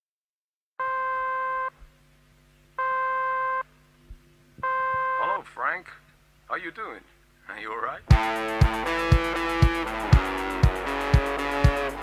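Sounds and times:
buzzy telephone line beeps: 0.8 - 1.8, 2.8 - 3.7, 4.6 - 5.4
faint low hum: 0.8 - 8.2.

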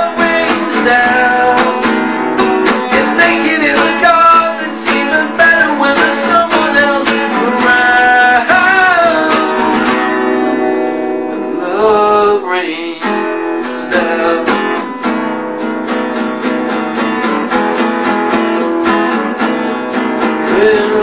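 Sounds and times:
strummed acoustic guitar: 0.0 - 21.0.

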